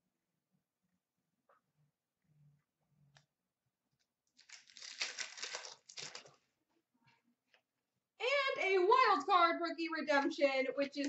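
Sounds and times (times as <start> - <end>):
foil wrapper crinkling: 4.4 - 6.4.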